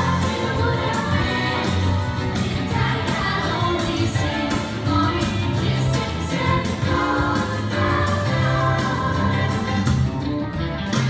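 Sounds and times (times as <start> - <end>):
girls' choir singing: 0.0 - 9.7
steady bass line: 0.0 - 11.0.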